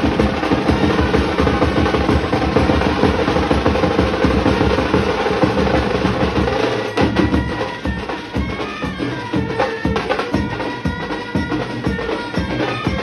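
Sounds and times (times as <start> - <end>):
hand drums rolling: 0.0 - 13.0
trumpets and brass horns: 0.0 - 13.0.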